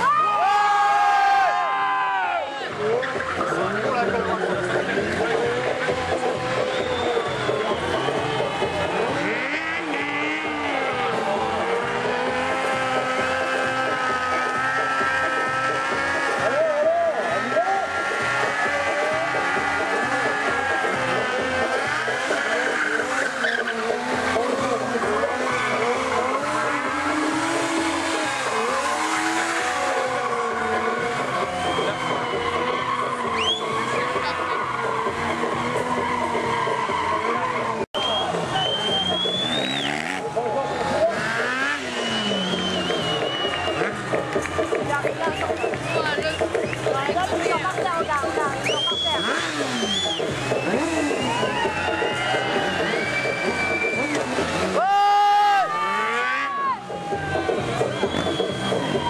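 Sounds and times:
crowd noise: 0.0 - 59.0
motorcycle engines revving: 0.0 - 59.0
music: 0.0 - 59.0
tyre squeal: 6.2 - 11.0, 12.2 - 40.2, 41.0 - 44.0, 48.5 - 56.8.

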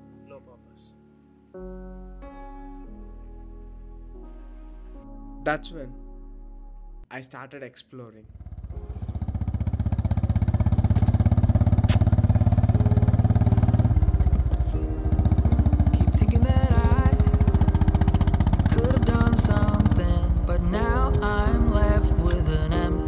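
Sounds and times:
music: 0.0 - 7.4, 8.8 - 9.2, 12.6 - 23.0
motorcycle engine running: 8.3 - 23.0.

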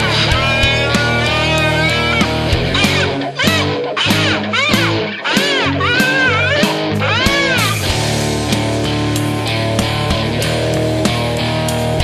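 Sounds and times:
punk band playing: 0.0 - 12.0.

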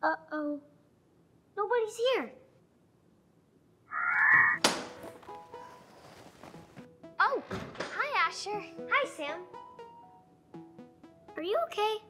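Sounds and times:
soft background music: 4.3 - 12.0.

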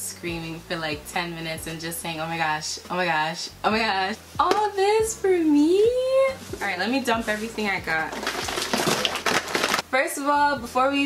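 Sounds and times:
bubble wrap crinkling: 6.3 - 9.8
cardboard rustling: 6.4 - 9.8.

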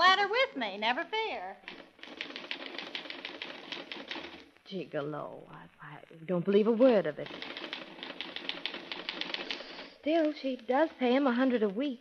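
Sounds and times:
typewriter keys clacking: 1.6 - 4.4, 7.2 - 9.9.

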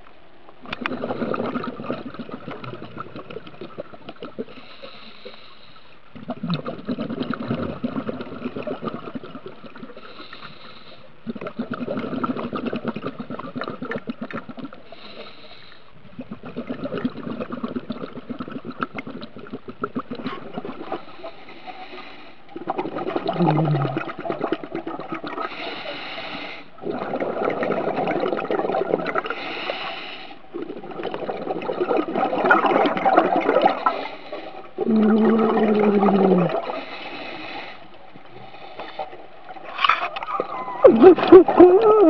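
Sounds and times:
regulator inhale hiss: 4.5 - 6.0, 10.0 - 11.2, 14.8 - 16.0, 21.0 - 22.5, 25.5 - 26.8, 29.3 - 30.5, 33.8 - 34.8, 36.6 - 39.2
exhaust bubbles crackling: 22.5 - 25.5, 34.6 - 37.0.

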